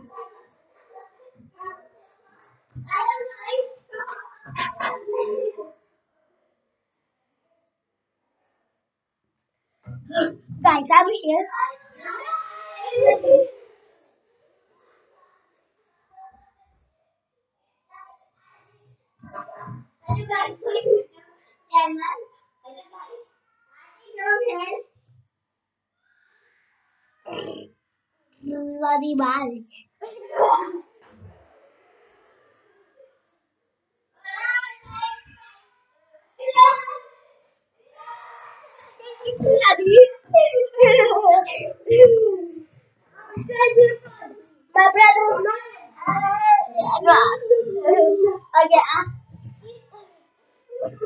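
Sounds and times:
child's harsh vocal sound: 38.0 - 42.6, 44.8 - 49.2
boy calling out: 39.2 - 42.6, 43.4 - 44.2, 44.8 - 49.4.

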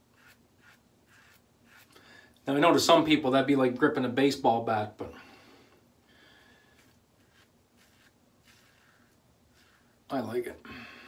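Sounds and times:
razor scratching stubble: 0.0 - 2.0, 6.7 - 10.1.

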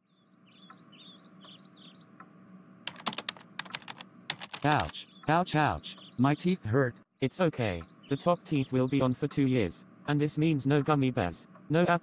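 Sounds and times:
rapid sharp clicks: 2.9 - 5.0.

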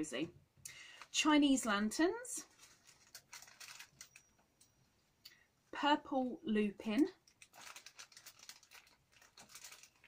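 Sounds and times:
plastic bag crinkling: 0.9 - 4.4, 7.0 - 10.0.

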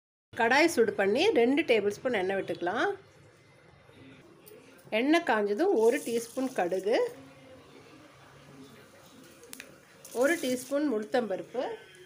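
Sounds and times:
woman speaking: 4.9 - 7.2, 10.1 - 11.9.

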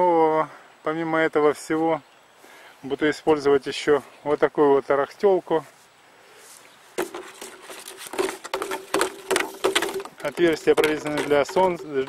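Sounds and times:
plastic bottles knocking and crinkling: 7.0 - 12.0.

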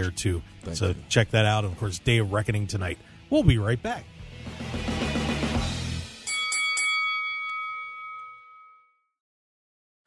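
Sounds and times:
bell chime ringing: 6.2 - 9.2.

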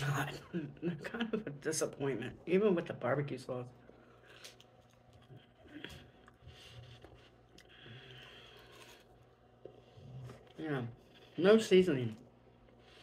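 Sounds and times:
chewing crunchy food: 3.8 - 11.4.

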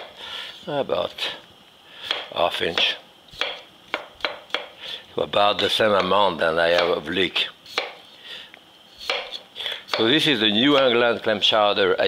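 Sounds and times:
knife striking wooden cutting board: 2.1 - 4.7, 6.0 - 7.0, 7.7 - 8.0, 9.0 - 10.2.

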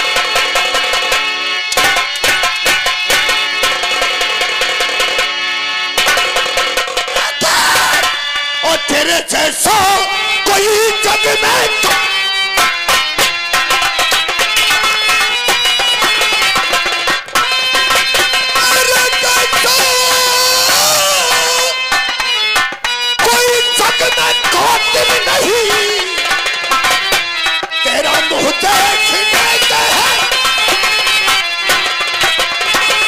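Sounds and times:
accompanying music: 0.0 - 33.0
man singing a long high note: 7.2 - 12.0, 18.6 - 21.8, 23.7 - 26.3, 27.8 - 30.3
held instrument tones: 9.6 - 33.0
hand drums struck: 11.9 - 27.8.

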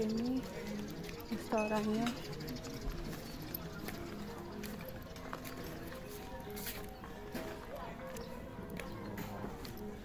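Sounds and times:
distant diners' voices: 0.0 - 10.0.

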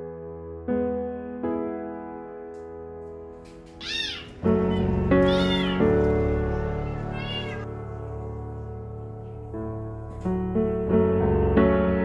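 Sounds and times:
soft piano music: 0.0 - 12.0
kitten meowing: 3.7 - 7.7.

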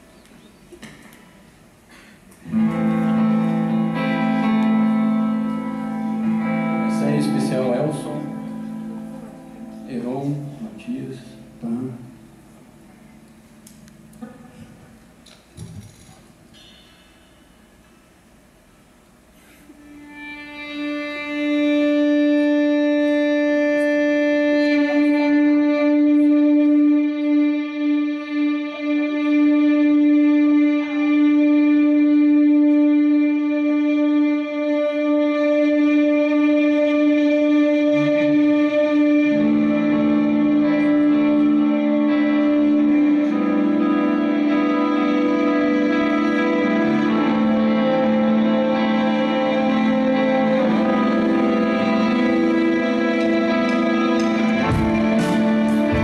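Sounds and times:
band playing sustained notes: 0.0 - 56.0.

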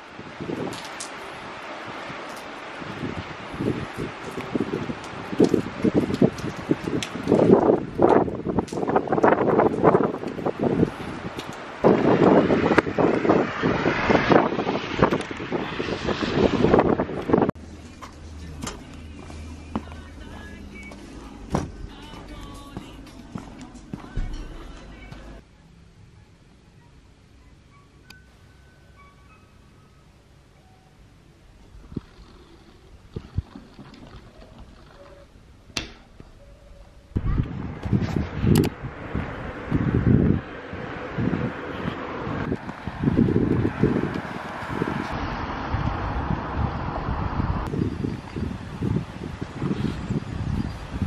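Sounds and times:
rain and wind on umbrella: 0.0 - 23.0, 31.6 - 35.4, 37.1 - 51.0.

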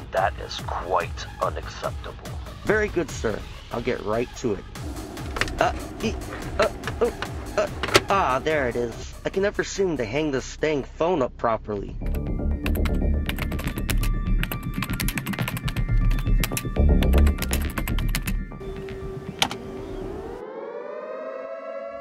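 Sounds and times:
loud background music: 0.1 - 9.7
rising tone sweep: 4.8 - 9.3, 18.6 - 22.0
steady electronic tone: 4.8 - 9.3
keyboard typing: 12.6 - 18.9.

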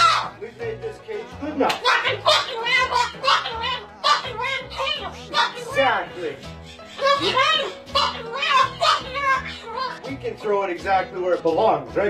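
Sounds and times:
cockatoo chattering speech-like: 0.0 - 10.4
song playing in background: 0.0 - 12.0.

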